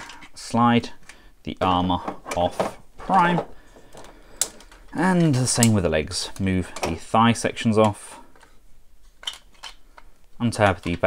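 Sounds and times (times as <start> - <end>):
handling plastic toy parts: 0.0 - 11.0.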